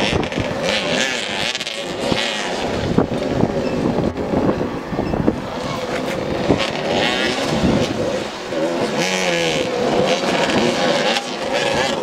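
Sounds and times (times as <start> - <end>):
motorcycle engines revving: 0.0 - 12.0.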